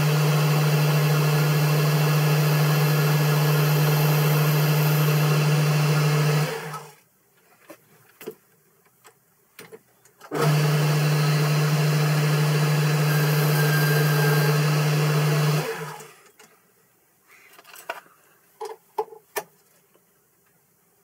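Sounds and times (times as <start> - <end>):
lathe motor hum: 0.0 - 6.9, 10.4 - 16.0.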